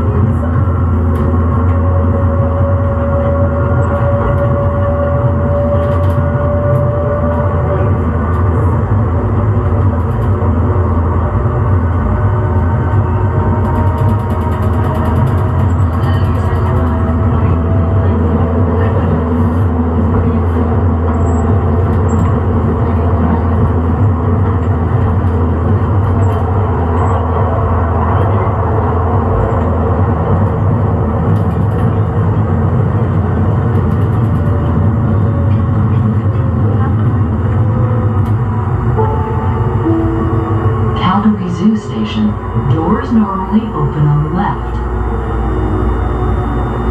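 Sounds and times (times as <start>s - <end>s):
light rail vehicle rumble: 0.0s - 46.9s
whining tones sliding in pitch: 39.0s - 46.9s.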